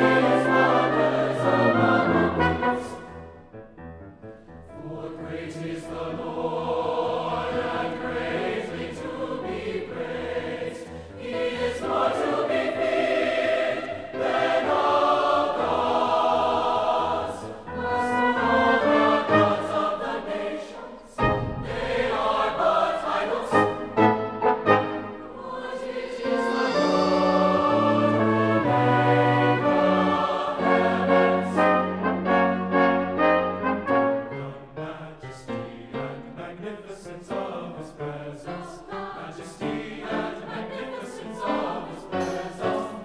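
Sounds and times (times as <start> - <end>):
choir singing: 0.0 - 3.3, 4.7 - 43.0
brass accompaniment: 0.0 - 3.4, 17.7 - 19.9, 23.5 - 25.4, 26.1 - 34.6
piano accompaniment: 0.0 - 20.5, 21.2 - 34.9.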